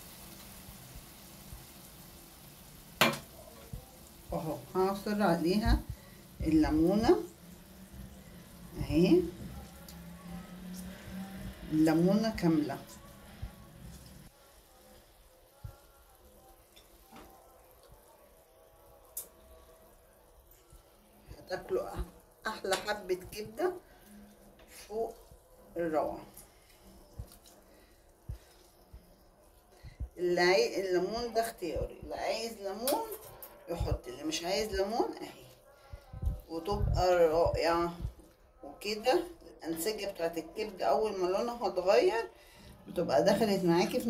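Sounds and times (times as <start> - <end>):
food sizzling in a pan: 0.0 - 32.1.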